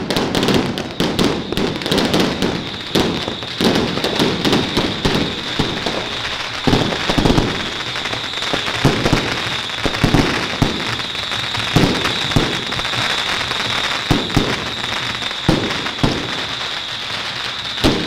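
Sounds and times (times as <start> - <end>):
firecrackers crackling and banging: 0.0 - 18.0.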